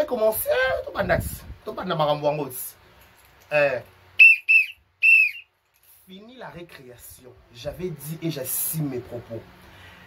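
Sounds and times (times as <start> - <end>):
shrill whistle blasts: 4.2 - 5.5.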